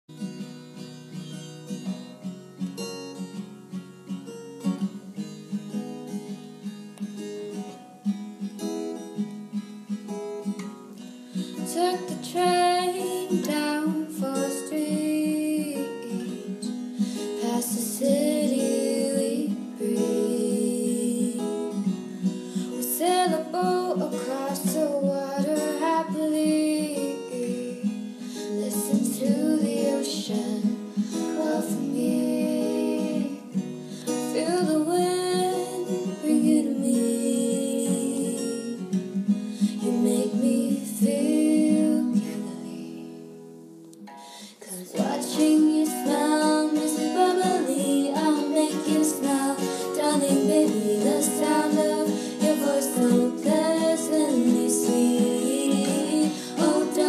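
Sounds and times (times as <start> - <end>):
acoustic guitar strumming: 0.1 - 57.0
woman singing: 11.6 - 38.9, 39.6 - 43.3, 44.3 - 57.0.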